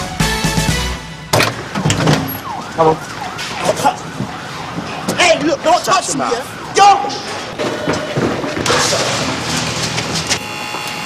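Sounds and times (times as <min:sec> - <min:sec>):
siren: 0:01.6 - 0:08.4, 0:10.3 - 0:11.0
sharp knocks and bangs: 0:07.2 - 0:10.4.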